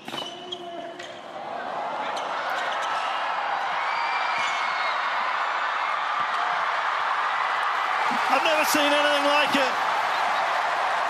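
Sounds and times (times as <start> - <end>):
shoe squeaks: 0.0 - 1.2
crowd noise: 0.0 - 11.0.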